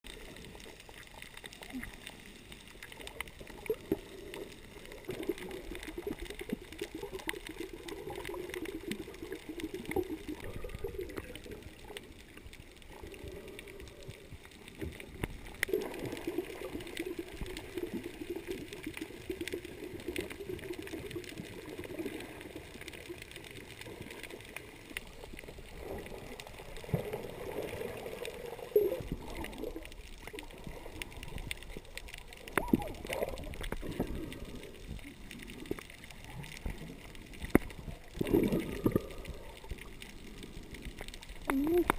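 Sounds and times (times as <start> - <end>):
underwater rush of moving water: 0.0 - 41.9
sharp underwater clicks: 0.1 - 41.9.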